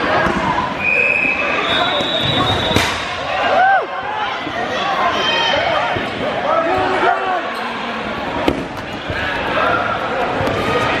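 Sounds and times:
sharp smack: 0:02.8 - 0:03.2.

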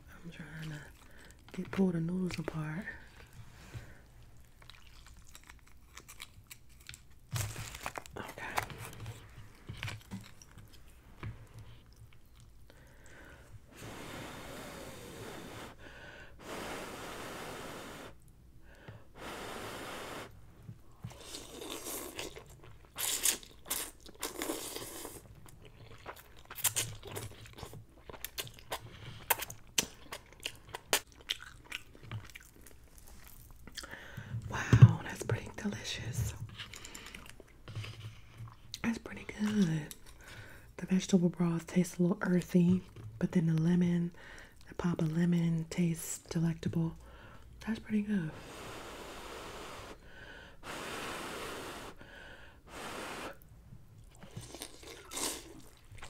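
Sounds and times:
wet chewing with mouth clicks: 0:00.4 - 0:13.6, 0:20.8 - 0:34.2, 0:36.4 - 0:40.6, 0:53.4 - 0:56.0.

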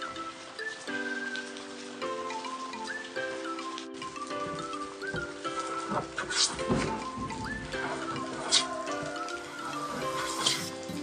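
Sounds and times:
instrumental music: 0:00.0 - 0:11.0.

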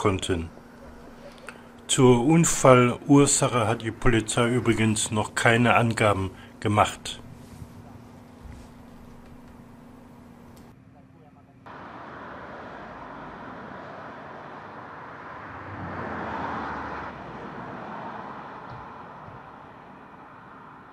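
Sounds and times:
road traffic rushing: 0:00.0 - 0:10.5, 0:11.7 - 0:20.9.

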